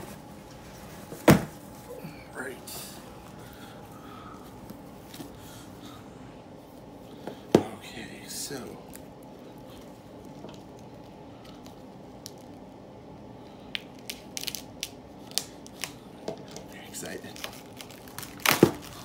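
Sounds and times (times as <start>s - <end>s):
plastic wrap crinkling: 13.7s - 19.0s.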